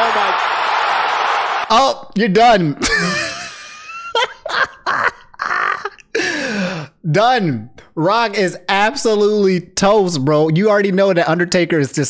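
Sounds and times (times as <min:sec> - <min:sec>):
man groaning: 0:04.9 - 0:07.0.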